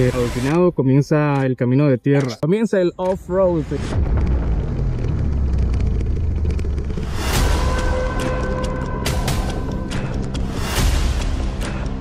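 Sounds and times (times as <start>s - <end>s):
motorcycle engine rumble: 3.9s - 10.6s.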